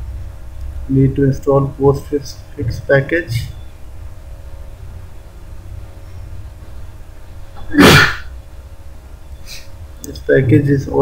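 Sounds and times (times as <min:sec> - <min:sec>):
man coughing sharply: 0:07.6 - 0:08.3.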